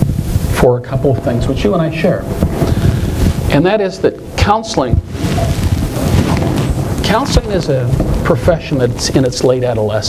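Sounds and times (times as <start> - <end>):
rustling on lapel microphone: 0.0 - 10.0.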